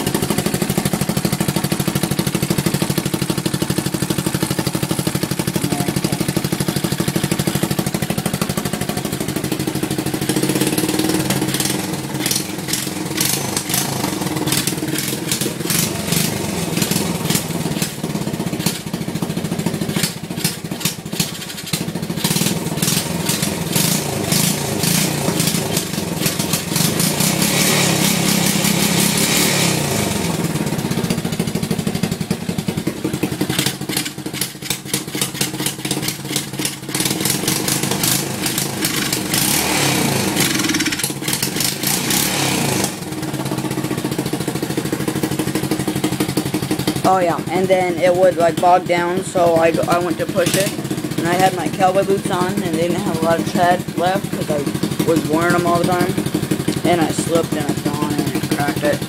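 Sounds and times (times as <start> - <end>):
engine revving loudly: 5.4 - 18.7, 22.2 - 30.8, 37.0 - 43.2, 47.0 - 59.0.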